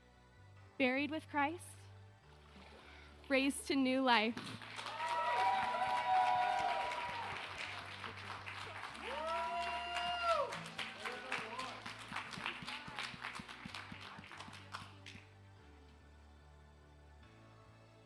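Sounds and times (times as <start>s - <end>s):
crowd clapping and cheering: 4.3s - 15.4s
drawn-out whoops: 4.8s - 7.6s, 9.0s - 10.6s.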